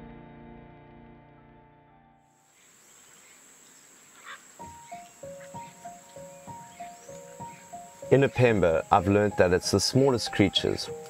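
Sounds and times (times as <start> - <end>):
high insect drone: 2.5 - 11.0
soft background music: 4.6 - 11.0.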